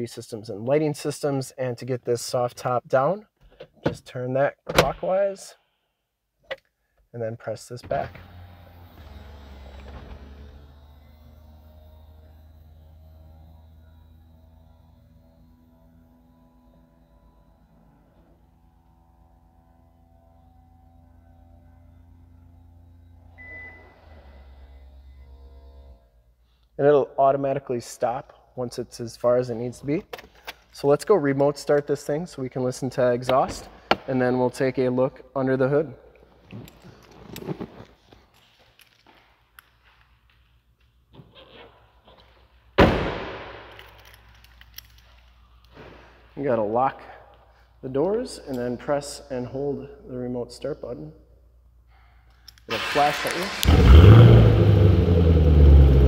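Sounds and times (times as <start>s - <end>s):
motor hum with whine: 7.9s - 26.4s
car door slamming: 42.8s - 43.6s.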